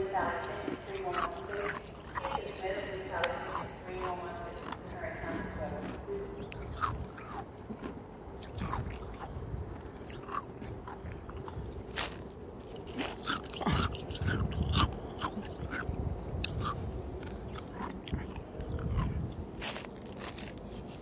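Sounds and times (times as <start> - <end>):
person chewing crunchy ice: 0.0 - 21.0.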